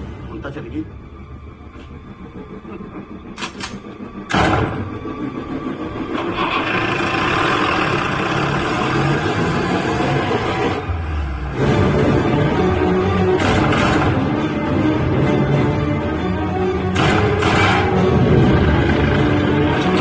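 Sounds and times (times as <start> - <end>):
dense orchestral texture: 0.0 - 20.0
low rumble: 0.0 - 20.0.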